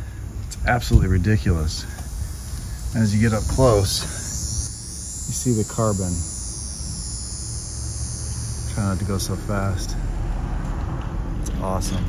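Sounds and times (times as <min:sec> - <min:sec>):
high-pitched insect drone: 0:00.0 - 0:12.0
low steady rumble: 0:00.0 - 0:12.0.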